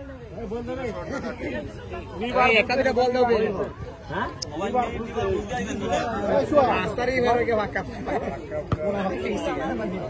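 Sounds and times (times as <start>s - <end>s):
men chattering: 0.0s - 10.0s.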